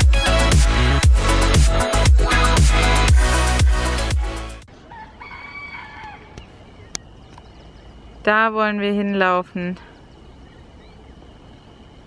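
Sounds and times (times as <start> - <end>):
electronic dance music: 0.0 - 4.6
bird long call: 9.6 - 11.8.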